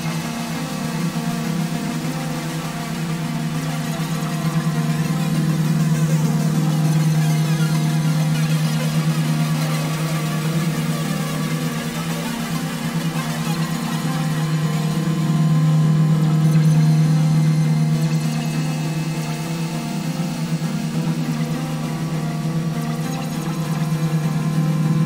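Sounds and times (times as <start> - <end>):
ambient synthesizer music: 0.0 - 25.0.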